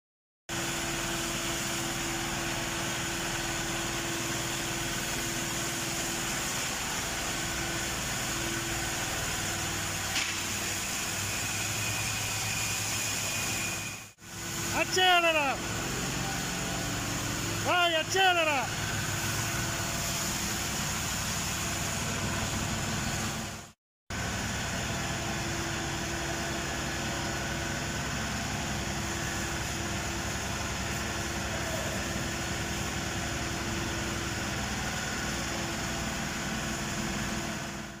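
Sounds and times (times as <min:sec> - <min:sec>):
engine idling: 0:15.6 - 0:38.0.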